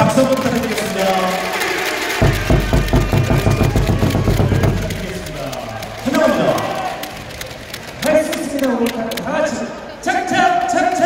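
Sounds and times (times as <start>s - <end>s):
cheer music with fast drum beat: 0.0s - 7.2s
hall noise: 2.1s - 8.2s.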